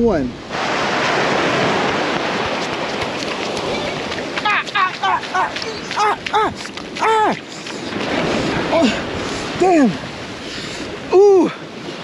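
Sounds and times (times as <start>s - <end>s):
surf washing over sand and shingle: 0.0s - 12.0s.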